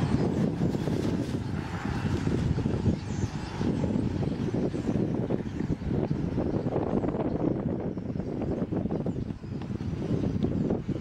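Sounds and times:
birds squealing: 0:00.0 - 0:11.0
steady low rumble: 0:00.0 - 0:11.0.

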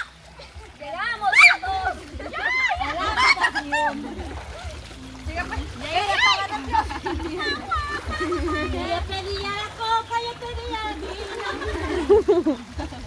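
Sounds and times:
river water splashing: 0:00.0 - 0:13.0
women calling out: 0:00.9 - 0:04.2, 0:05.3 - 0:11.4.

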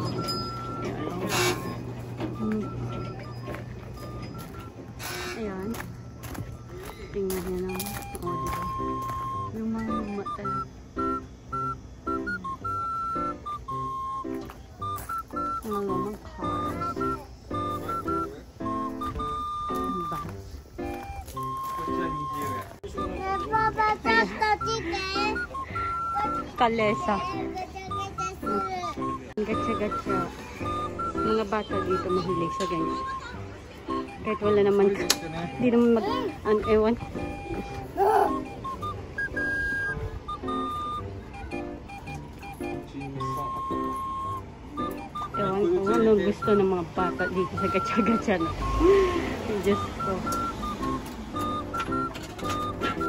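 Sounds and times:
electronic beeping tune: 0:00.0 - 0:05.7, 0:07.3 - 0:53.0.

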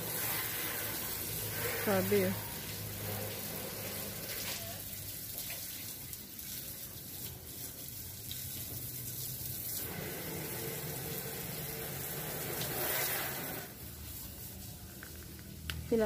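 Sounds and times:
running water rushing: 0:00.0 - 0:14.6.

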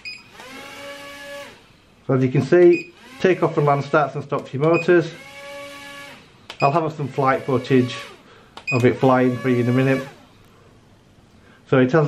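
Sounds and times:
drone motors whining: 0:00.0 - 0:01.7, 0:02.5 - 0:04.0, 0:04.9 - 0:06.3, 0:07.0 - 0:10.4.

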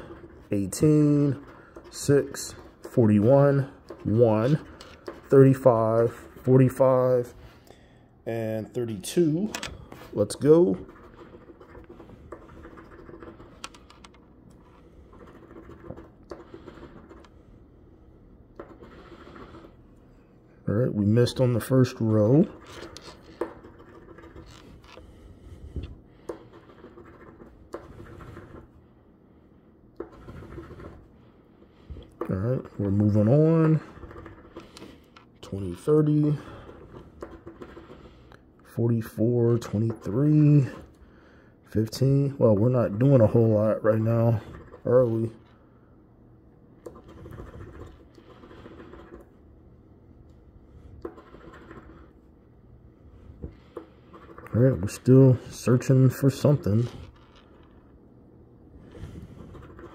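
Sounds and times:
coin scratching lottery ticket: 0:00.0 - 0:06.9, 0:10.1 - 0:17.4, 0:18.6 - 0:19.8, 0:21.3 - 0:25.1, 0:26.3 - 0:28.7, 0:30.0 - 0:31.1, 0:32.3 - 0:38.3, 0:46.9 - 0:49.4, 0:51.0 - 0:52.2, 0:59.3 - 0:59.9.

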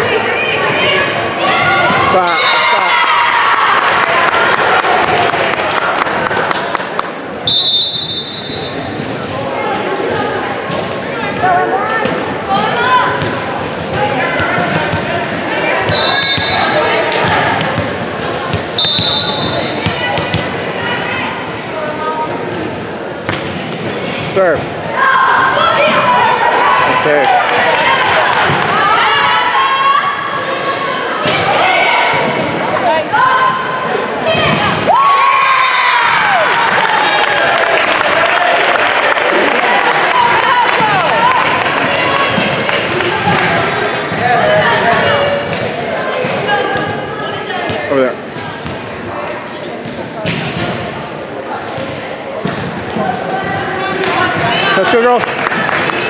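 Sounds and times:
people shouting and cheering: 0:00.0 - 0:22.2, 0:24.4 - 0:49.8, 0:51.4 - 0:56.0.

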